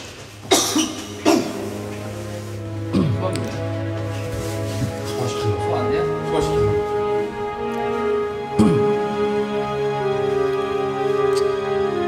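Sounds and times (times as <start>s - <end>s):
person coughing: 0.4s - 1.7s, 8.6s - 8.9s.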